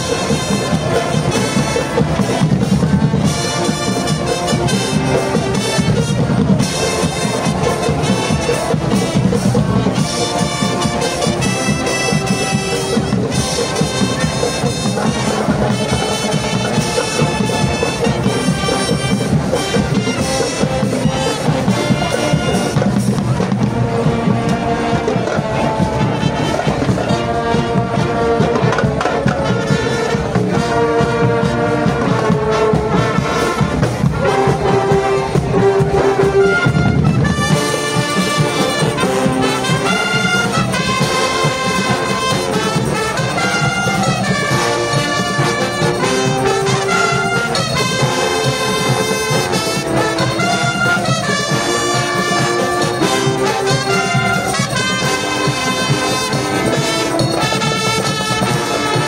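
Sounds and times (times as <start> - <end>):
brass section playing: 0.0 - 59.0
marching drums: 0.0 - 59.0.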